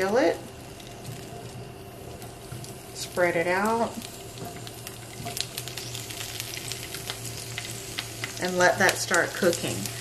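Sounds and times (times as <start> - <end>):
oil sizzling in a skillet: 0.0 - 10.0.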